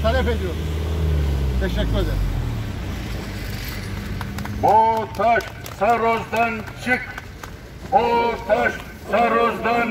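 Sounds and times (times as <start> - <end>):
traffic hum: 0.0 - 9.9
vehicle rumble: 0.0 - 9.9.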